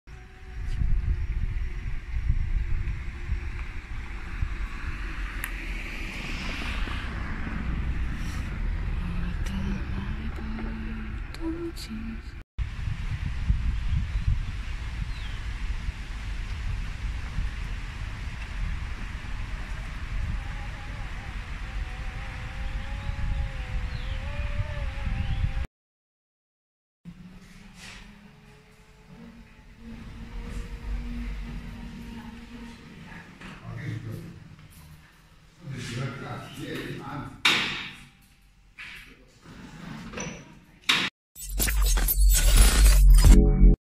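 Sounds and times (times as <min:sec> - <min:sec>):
powered trolley whine and rumble: 0:00.1 - 0:25.5, 0:27.1 - 0:33.5
wind buffeting microphone: 0:00.2 - 0:11.4, 0:12.6 - 0:25.7.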